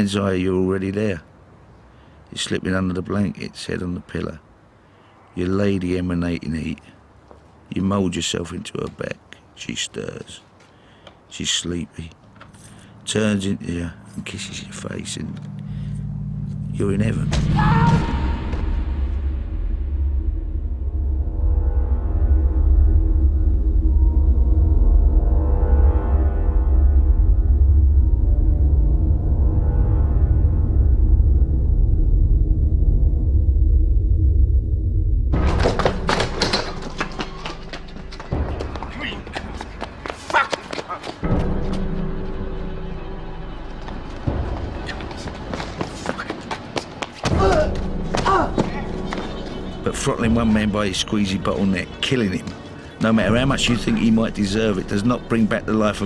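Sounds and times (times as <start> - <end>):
ominous rumbling drone music: 12.3 - 36.6, 41.2 - 45.8, 47.3 - 56.0
dramatic film score: 12.3 - 56.0.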